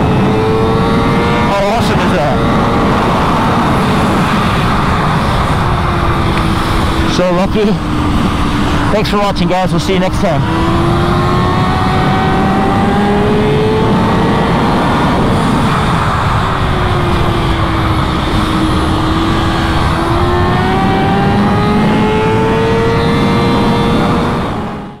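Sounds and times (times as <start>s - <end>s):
motorcycle engine at high revs: 0.0s - 25.0s
wind rush: 0.0s - 25.0s.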